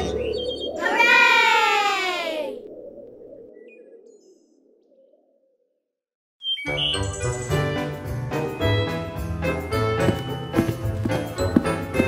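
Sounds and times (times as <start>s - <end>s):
background music: 6.6s - 12.0s.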